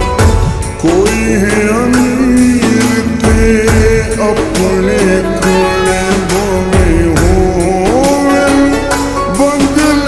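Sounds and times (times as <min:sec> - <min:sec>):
deep bass: 0:00.0 - 0:10.0
slowed reverb-heavy song: 0:00.0 - 0:10.0.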